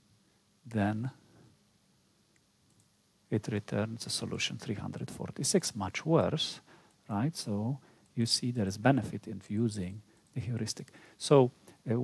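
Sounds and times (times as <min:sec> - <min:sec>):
faint small clicks: 0:02.3 - 0:02.9, 0:09.5 - 0:11.0.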